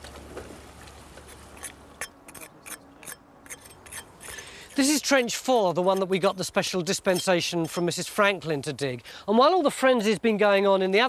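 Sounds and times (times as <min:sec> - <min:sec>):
hand tool scraping brick: 0:01.2 - 0:08.4.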